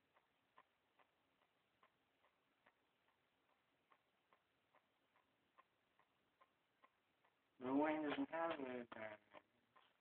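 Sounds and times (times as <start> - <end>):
faint regular ticking: 0.0 - 10.0.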